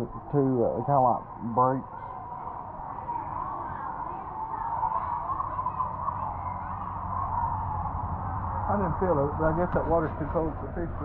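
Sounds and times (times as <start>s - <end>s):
distant voices murmuring: 0.0s - 11.0s
low steady hum: 0.0s - 11.0s.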